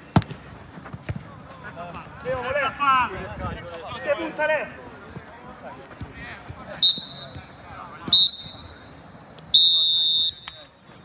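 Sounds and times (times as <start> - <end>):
faint players' voices: 0.0 - 11.0
referee's whistle blasts: 6.8 - 7.4, 8.1 - 8.8, 9.5 - 10.8.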